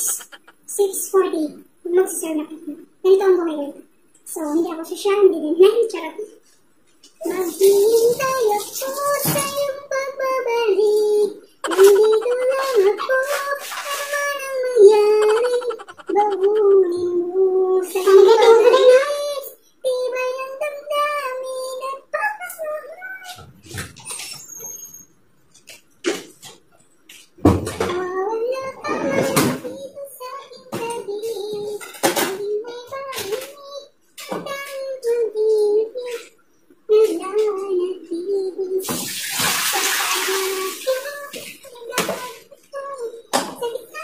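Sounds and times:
high singing voice: 0.0s - 1.0s, 7.2s - 23.4s
tap water running into plastic basin: 38.9s - 41.4s.

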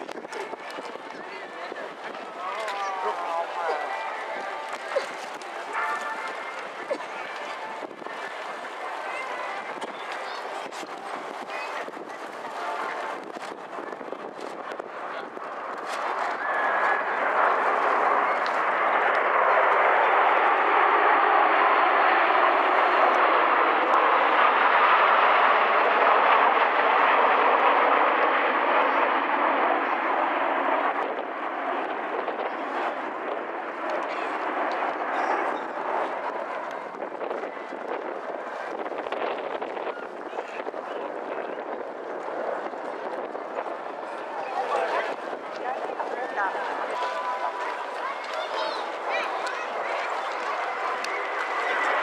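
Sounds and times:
jet engines passing overhead: 0.0s - 52.0s.

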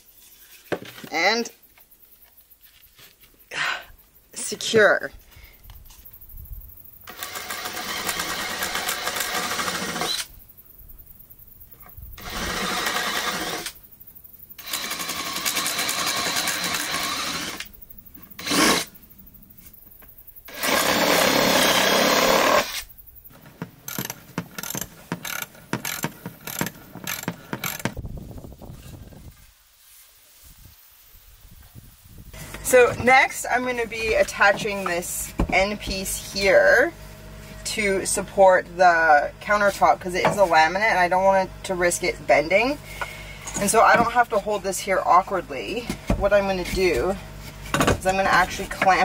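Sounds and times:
cordless drill boring into wood: 7.1s - 10.3s, 12.2s - 13.8s, 14.6s - 17.7s, 18.4s - 18.9s, 20.5s - 22.9s, 23.9s - 28.0s.

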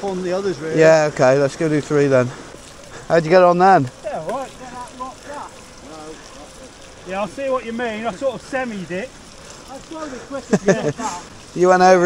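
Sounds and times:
low steady hiss: 0.0s - 12.0s
men laughing: 6.2s - 9.0s, 9.8s - 11.4s.

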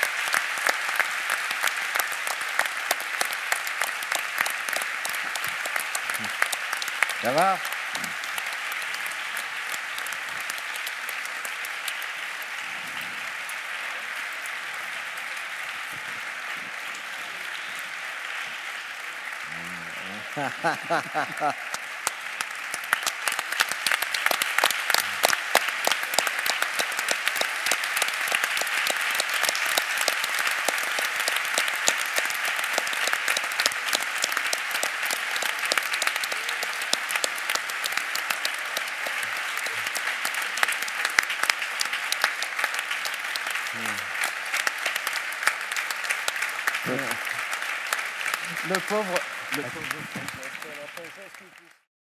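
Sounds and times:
audience applauding: 0.0s - 51.9s
faint voices: 19.4s - 21.6s.

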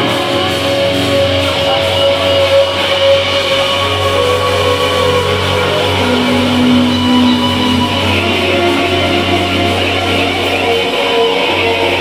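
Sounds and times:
electric guitars ringing: 0.0s - 12.0s
rock band playing: 0.0s - 12.0s.

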